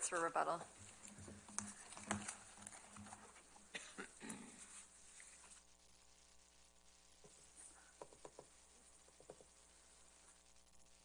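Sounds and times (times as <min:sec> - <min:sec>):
papers rustling at microphone: 0:00.0 - 0:05.7.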